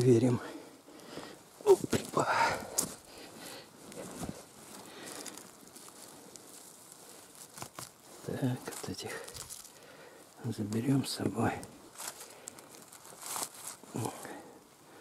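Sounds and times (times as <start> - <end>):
footsteps on dry pine needles: 1.6 - 14.2.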